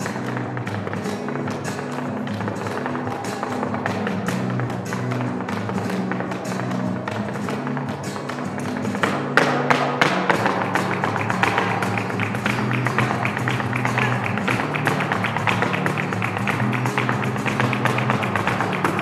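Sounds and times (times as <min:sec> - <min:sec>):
dance footwork on wooden board: 0:00.0 - 0:19.0
flamenco guitar: 0:00.0 - 0:19.0.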